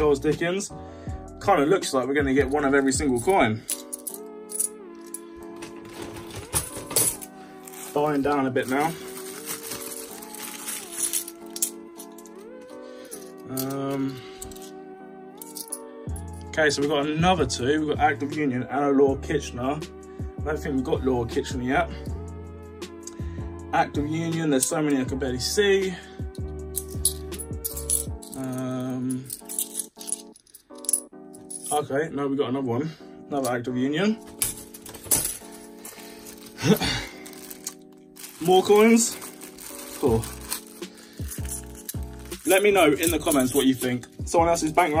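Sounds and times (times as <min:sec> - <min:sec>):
background music held notes: 0:00.0 - 0:45.0
coins clinking: 0:03.6 - 0:14.8, 0:15.4 - 0:15.9, 0:26.7 - 0:31.8, 0:34.2 - 0:44.2.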